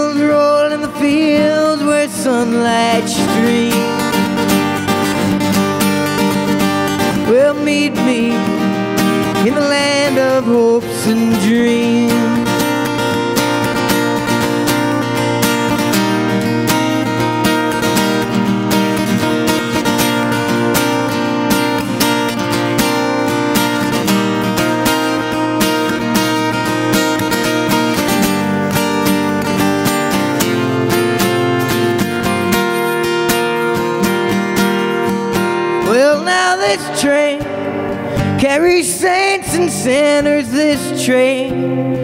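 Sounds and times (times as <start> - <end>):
acoustic guitar strumming: 0.0 - 42.0.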